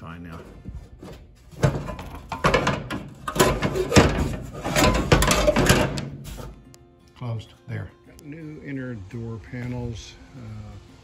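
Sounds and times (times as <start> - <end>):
metal lid clanking and scraping: 1.5 - 6.5.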